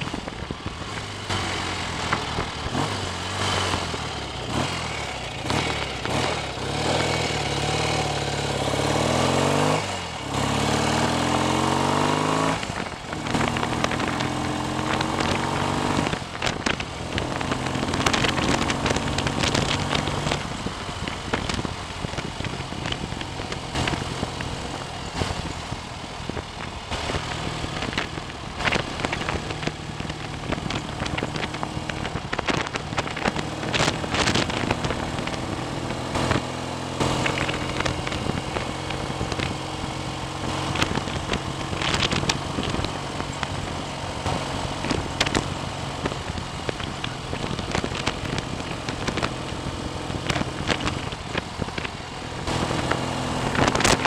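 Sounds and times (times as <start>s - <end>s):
motorcycle engine accelerating: 0.0s - 54.0s
wind: 0.0s - 54.0s.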